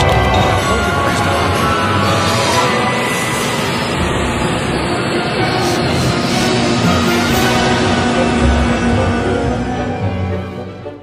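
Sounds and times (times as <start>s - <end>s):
jet engines running: 0.0s - 11.0s.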